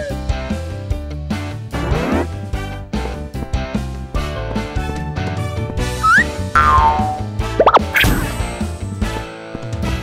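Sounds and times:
upbeat children's music: 2.9 - 8.8
whistle-like sweeps: 6.0 - 6.3
cartoon boing sound effects: 6.0 - 8.3.

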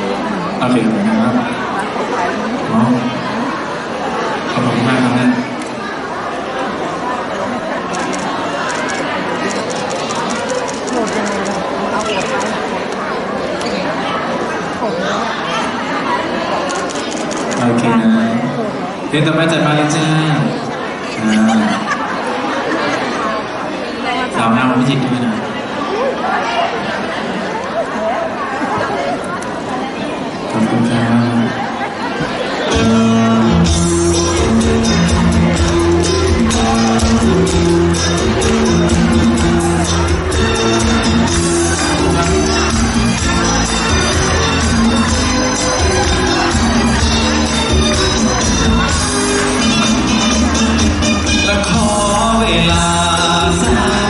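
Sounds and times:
audience chatter: 0.0 - 54.0
people talking at once: 0.0 - 54.0
backing music with chords and bass: 32.7 - 54.0.

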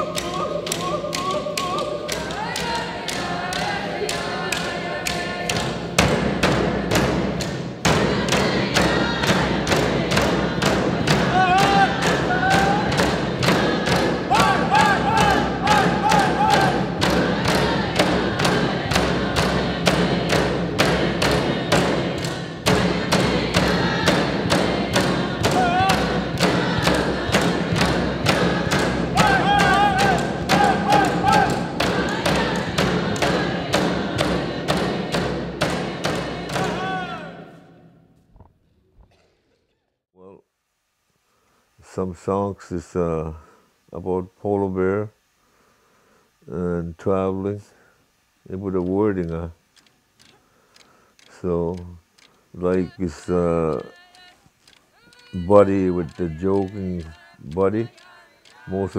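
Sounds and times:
frame drums beating: 0.0 - 37.6, 55.0 - 58.0
group singing: 0.0 - 37.9, 52.6 - 58.9.

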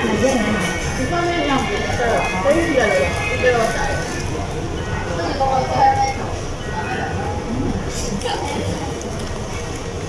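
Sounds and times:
faint voices chatting: 0.0 - 10.0.

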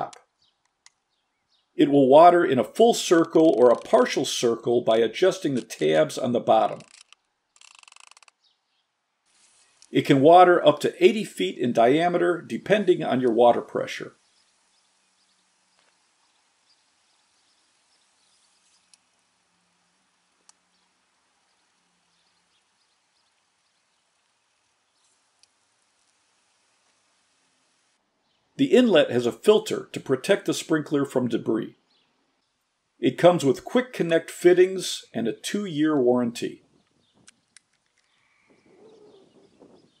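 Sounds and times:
faint distant bird call: 36.7 - 40.0.

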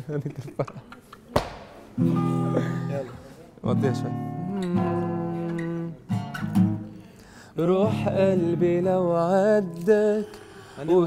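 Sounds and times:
acoustic guitar strumming: 2.0 - 11.0.

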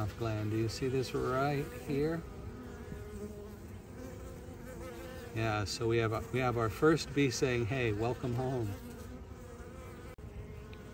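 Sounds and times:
bees buzzing: 0.0 - 10.9.

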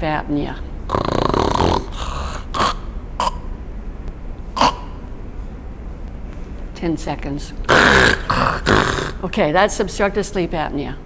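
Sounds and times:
woman snoring: 0.9 - 3.4, 7.7 - 9.3
woman snorting: 0.9 - 3.6, 4.6 - 5.0, 7.7 - 9.3.

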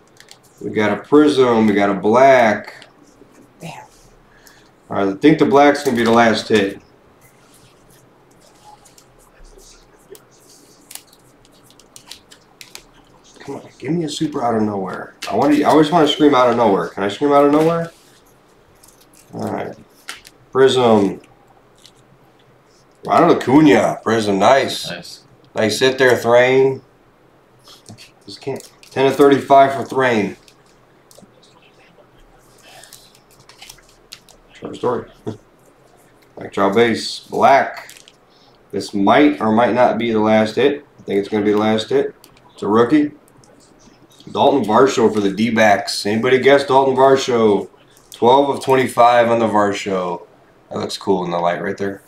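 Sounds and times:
cards being shuffled: 0.1 - 0.7, 5.7 - 20.4, 27.6 - 31.5, 32.4 - 35.4
man talking: 0.5 - 3.0, 4.9 - 6.9, 8.4 - 11.1, 12.1 - 18.0, 19.2 - 19.9, 20.5 - 21.3, 23.0 - 26.9, 27.9 - 33.2, 34.4 - 35.4, 36.3 - 52.0.

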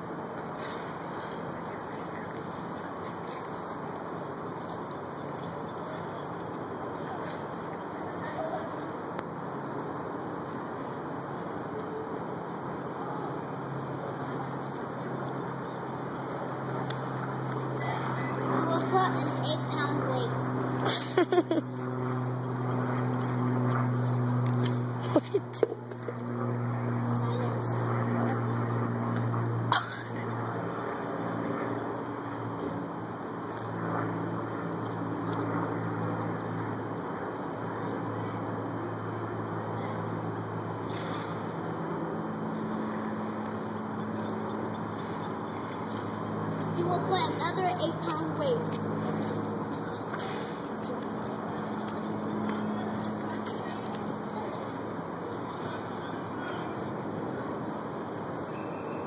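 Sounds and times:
low mechanical hum: 0.0 - 59.0
outdoor background noise: 0.0 - 59.0
faint voices: 11.6 - 20.8, 26.4 - 58.5.

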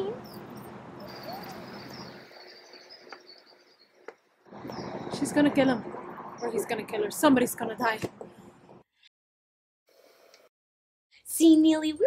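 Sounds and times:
birds chirping: 0.2 - 7.2.

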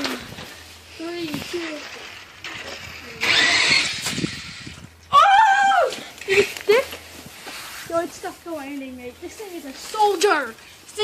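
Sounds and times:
toy monster truck motor burst: 1.6 - 4.8
children crying out excitedly: 3.2 - 7.1
high-pitched shout: 5.1 - 6.1.

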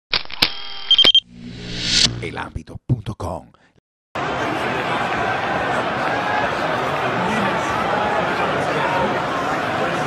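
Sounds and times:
short pulsing beep: 0.5 - 2.1
low hum: 0.5 - 2.4.

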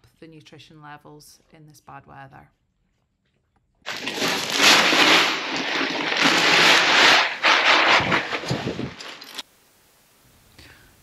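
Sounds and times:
grain pouring into metal feeder: 3.9 - 9.4.

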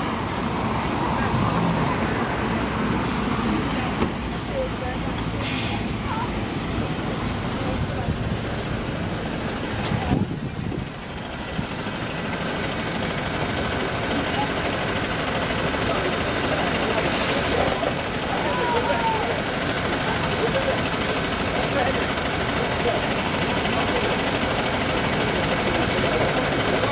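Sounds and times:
bus engine running: 0.0 - 26.9
brake air hiss: 5.4 - 6.3, 17.0 - 17.8.

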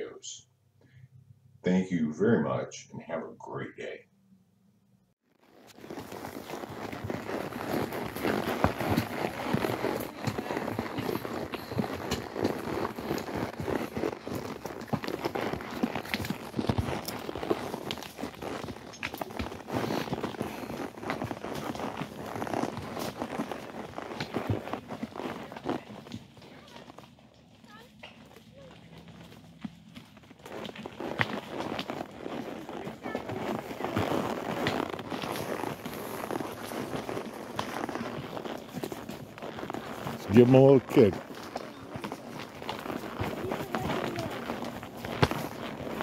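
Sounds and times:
hoofbeats on dirt trail: 5.4 - 46.0.

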